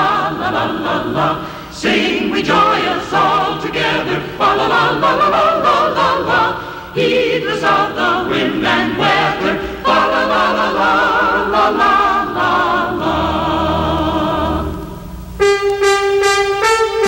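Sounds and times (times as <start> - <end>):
choir singing christmas song: 0.0 - 17.0.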